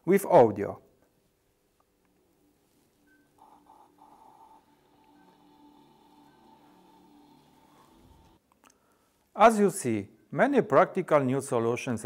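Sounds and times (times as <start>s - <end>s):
faint music from small speaker: 2.1s - 8.4s.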